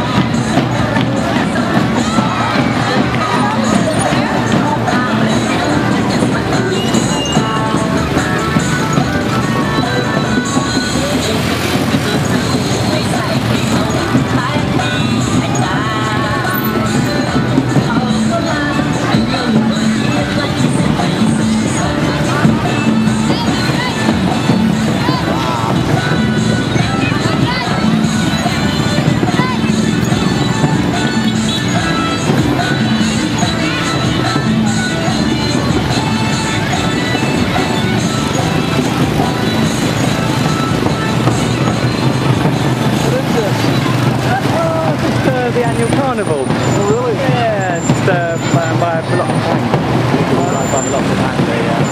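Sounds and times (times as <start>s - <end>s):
crowd voices: 0.0s - 51.9s
motorbikes passing: 0.0s - 51.9s
music: 0.0s - 51.9s
vehicle engines running: 0.0s - 51.9s
vehicle engine running: 7.7s - 16.7s.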